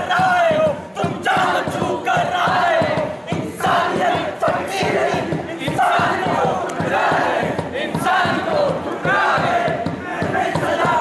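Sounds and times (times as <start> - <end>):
group shouting a chant: 0.0 - 11.0.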